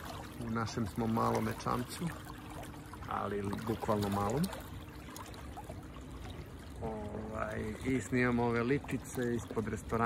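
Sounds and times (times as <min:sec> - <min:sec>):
water splashing against boat hull: 0:00.0 - 0:10.0.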